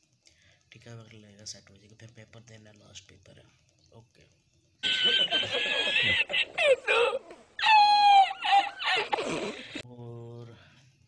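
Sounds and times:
man laughing in high-pitched squeal: 4.8s - 9.8s.

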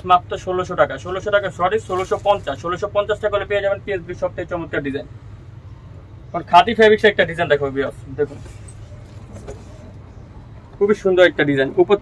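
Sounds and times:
low background hum: 0.0s - 12.0s
cloth rustling: 1.7s - 2.8s.

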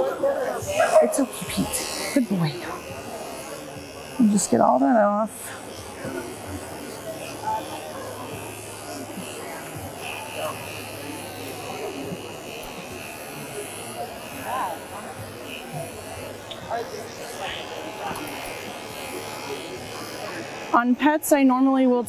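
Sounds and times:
electric dog clipper buzzing: 0.0s - 22.0s.

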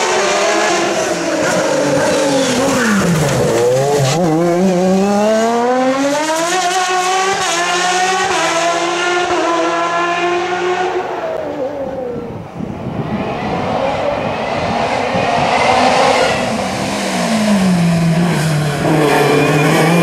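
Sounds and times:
race car engine revving: 0.0s - 11.8s, 13.0s - 20.0s.

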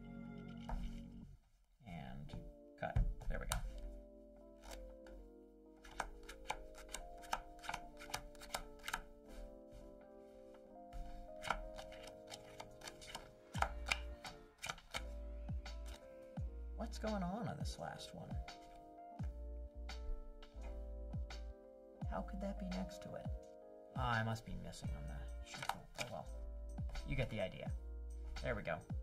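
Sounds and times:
background music: 0.0s - 29.0s
playing cards shuffling: 0.6s - 1.1s, 4.6s - 5.2s, 5.8s - 10.0s, 10.9s - 16.1s, 25.4s - 26.2s.

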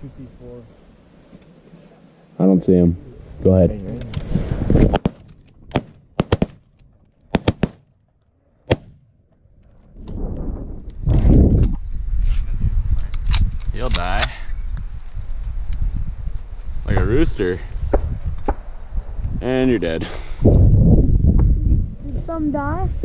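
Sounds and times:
shotgun shots: 4.9s - 6.6s, 7.3s - 7.9s, 8.7s - 9.0s
low rumbling noise: 8.4s - 13.8s.

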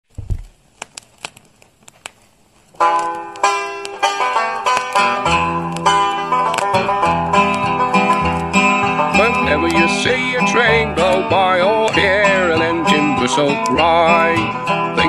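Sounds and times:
folk music on plucked strings: 2.8s - 15.0s
bass line: 5.2s - 15.0s.

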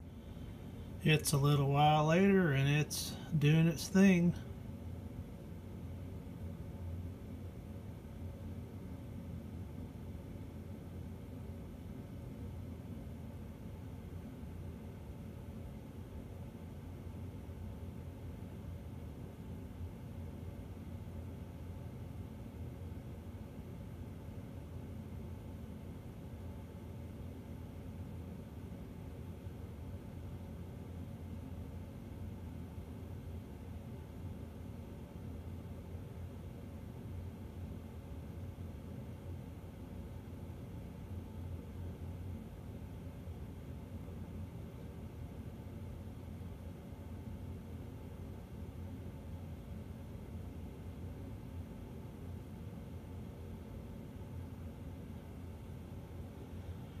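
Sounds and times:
faint low hum with hiss: 0.0s - 57.0s.

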